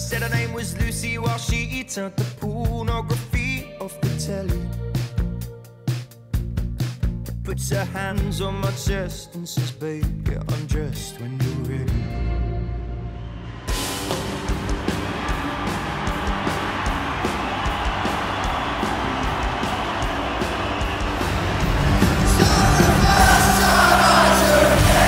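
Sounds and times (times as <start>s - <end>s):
live band playing: 0.0s - 12.7s, 13.7s - 25.0s
steady drumbeat: 13.7s - 25.0s.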